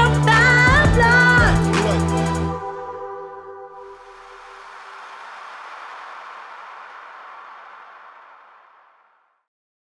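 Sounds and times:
soft hiss: 0:03.8 - 0:09.4.

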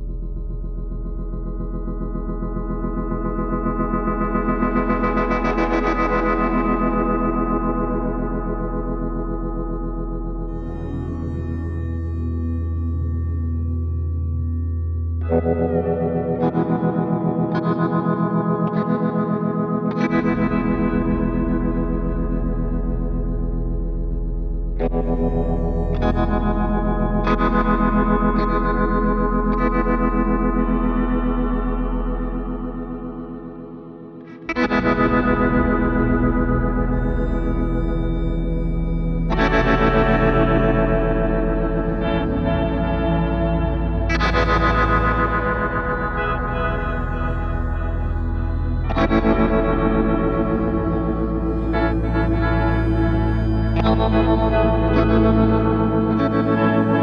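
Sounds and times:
ambient drone music: 0:00.0 - 0:57.0
electric guitar chords with effects: 0:00.0 - 0:57.0
steady low drone: 0:30.7 - 0:57.0.

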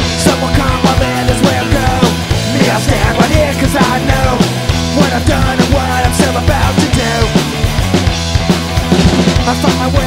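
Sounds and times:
distorted electric guitars: 0:00.0 - 0:10.0
fast drum beat: 0:00.0 - 0:10.0.

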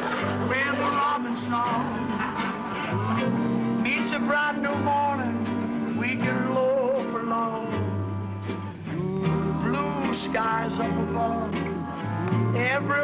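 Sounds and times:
male vocal group singing: 0:00.0 - 0:02.2, 0:03.6 - 0:07.8, 0:08.9 - 0:13.0
guitar: 0:00.0 - 0:13.0
upright bass: 0:00.0 - 0:13.0.

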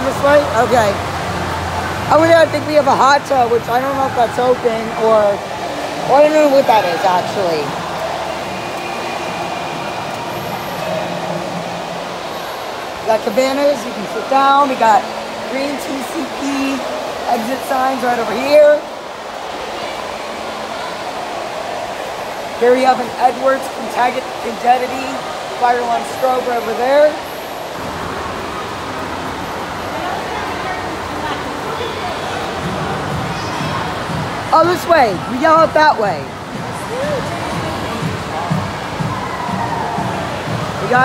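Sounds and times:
distant voices: 0:00.0 - 0:41.0
rushing water noise: 0:00.0 - 0:41.0.

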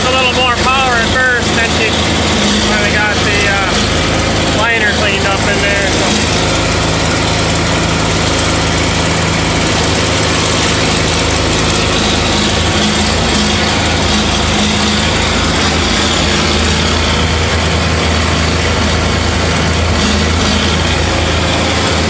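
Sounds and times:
tractor engine drone: 0:00.0 - 0:22.0.

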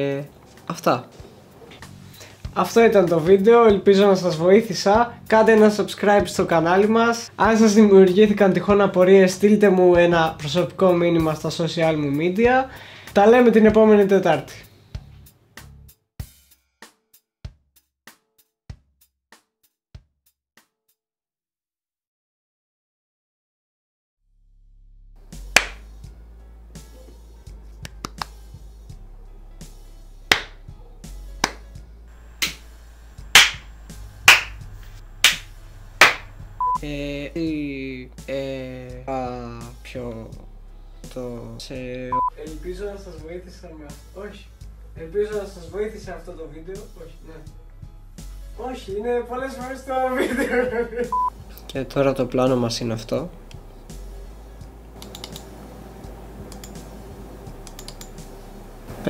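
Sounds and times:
faint background music: 0:00.0 - 0:15.9, 0:25.2 - 0:59.0
slow hand clapping: 0:25.5 - 0:25.9, 0:27.8 - 0:28.4, 0:30.3 - 0:30.6, 0:31.4 - 0:31.8, 0:32.4 - 0:32.6, 0:33.3 - 0:34.6, 0:35.2 - 0:36.3
low electrical hum: 0:30.6 - 0:37.4, 0:50.6 - 0:59.0
computer keyboard clicks: 0:55.0 - 0:55.5, 0:57.6 - 0:58.1.

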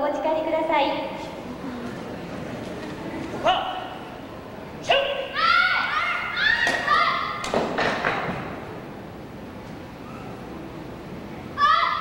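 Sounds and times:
child shouting: 0:05.2 - 0:07.4, 0:11.6 - 0:12.0.

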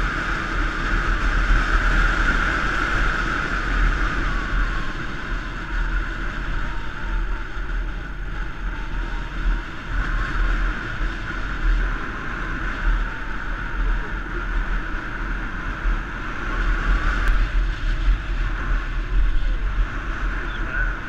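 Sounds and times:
motorbike engine running: 0:00.0 - 0:21.0
road noise: 0:00.0 - 0:21.0
wind rumble on microphone: 0:00.0 - 0:21.0.

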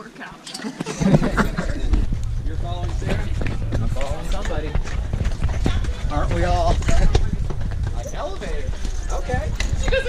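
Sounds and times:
people talking: 0:00.0 - 0:10.0
footsteps on stone paving: 0:00.8 - 0:10.0
steady low rumble: 0:01.0 - 0:10.0.

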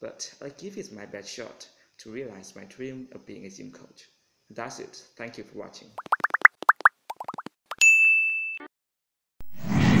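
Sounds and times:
short rising bloops: 0:06.0 - 0:07.5.

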